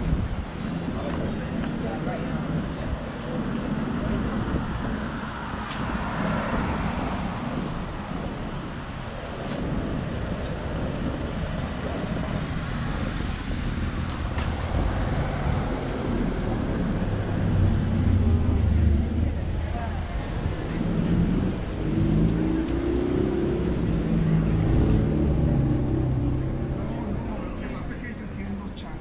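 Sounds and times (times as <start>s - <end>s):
cars passing: 0.0s - 29.0s
van engine rumble: 0.0s - 29.0s
voices of passersby: 0.0s - 29.0s.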